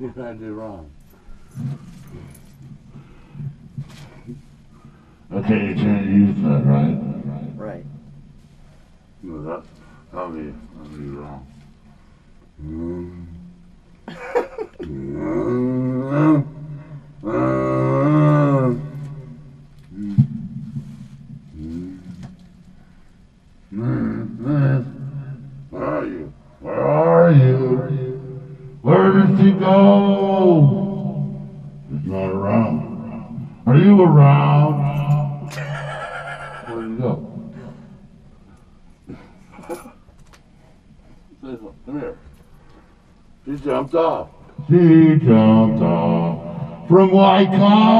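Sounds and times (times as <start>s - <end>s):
man making vocal noises: 12.6s - 13.4s, 14.7s - 16.5s, 17.2s - 19.0s, 19.9s - 20.3s, 21.5s - 22.2s, 23.7s - 25.0s
man's low held vocal tone: 12.6s - 13.6s, 14.8s - 19.3s, 19.9s - 20.4s, 21.5s - 22.3s, 23.7s - 35.5s.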